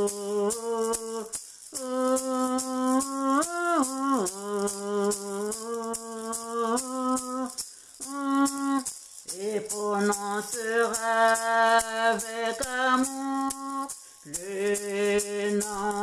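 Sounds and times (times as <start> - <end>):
rattle shaken in steady beat: 0.0 - 16.0
woman singing wordless melody: 0.0 - 16.0.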